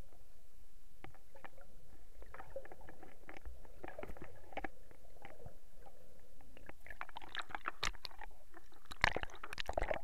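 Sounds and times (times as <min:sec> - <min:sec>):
underwater rumble: 0:00.0 - 0:10.0
sharp underwater clicks and crackles: 0:01.0 - 0:10.0.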